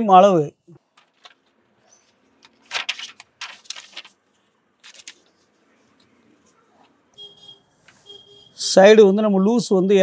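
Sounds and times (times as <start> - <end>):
stiff paper crackling and rustling: 0.8 - 6.2.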